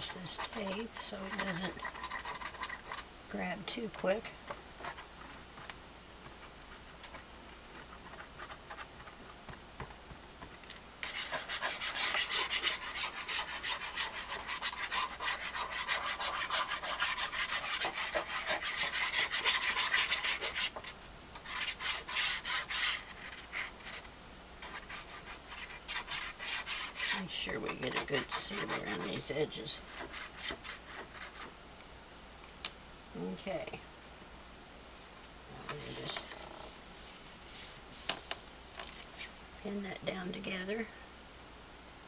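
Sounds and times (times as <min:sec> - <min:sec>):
sponge scrubbing on paper: 0:00.0 - 0:03.0, 0:11.0 - 0:31.5, 0:35.7 - 0:38.2.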